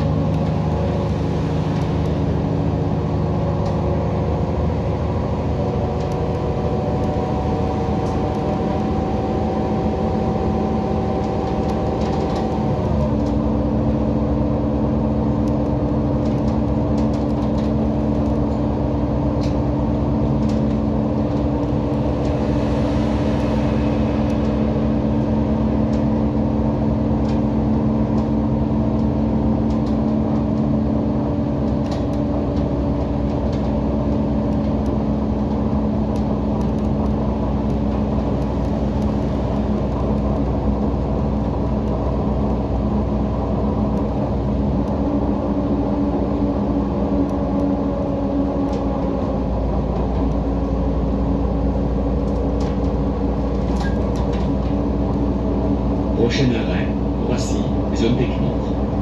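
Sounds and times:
bus diesel engine drone: 0.0 - 59.0
road and tyre noise: 0.0 - 59.0.

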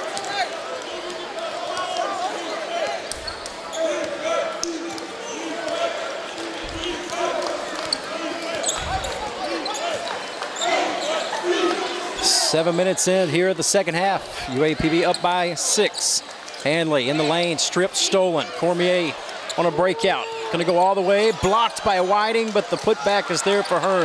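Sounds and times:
crowd and player voices echoing: 0.0 - 24.0.

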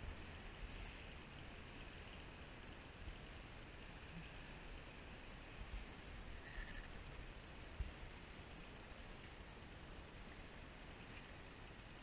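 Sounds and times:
choppy water: 0.0 - 12.0
wind: 0.0 - 12.0.

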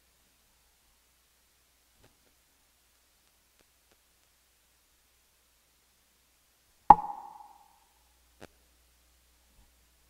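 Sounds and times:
brief ringing tone: 6.9 - 7.6
sharp knock: 6.9 - 7.6.

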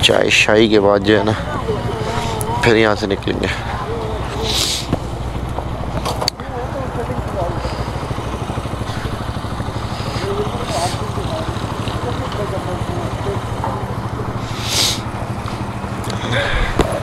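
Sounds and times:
people talking: 0.0 - 5.0, 6.3 - 8.1, 9.8 - 15.0, 16.1 - 17.0
engine idling: 0.0 - 17.0.

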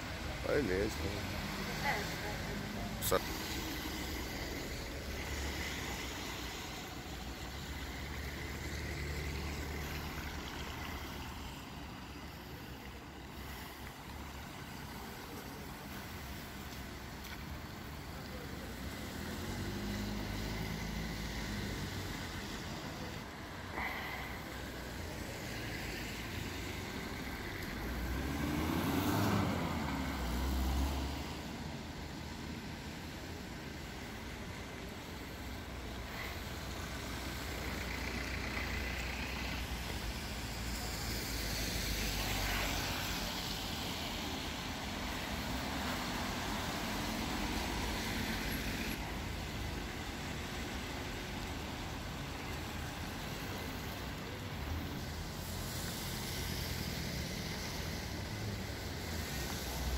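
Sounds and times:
tyres hissing on wet road: 0.0 - 59.9
vehicles passing by: 0.0 - 59.9.

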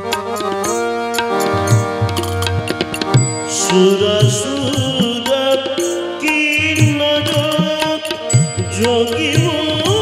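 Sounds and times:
percussion strokes: 0.0 - 10.0
sustained keyboard chords: 0.0 - 10.0
man singing into a microphone: 3.4 - 10.0.

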